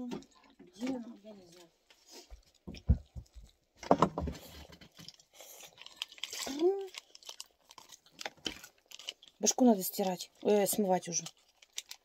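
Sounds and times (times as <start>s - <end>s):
objects clattering: 2.5s - 7.0s
wrapper rustling: 3.2s - 12.0s.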